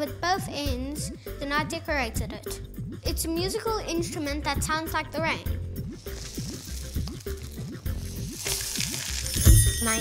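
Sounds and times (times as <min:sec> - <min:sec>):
background music: 0:00.0 - 0:10.0
rain stick rice trickling: 0:05.9 - 0:09.9.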